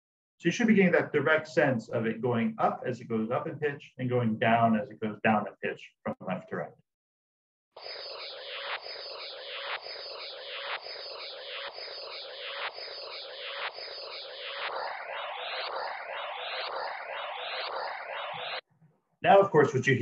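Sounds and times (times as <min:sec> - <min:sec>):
dense wash of tones: 0:07.8 - 0:18.6
rising tone sweeps: 0:07.8 - 0:18.6.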